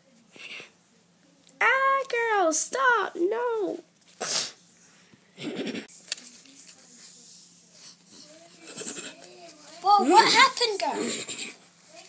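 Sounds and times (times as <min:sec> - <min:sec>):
child making mouth noises: 0:10.8 - 0:11.6.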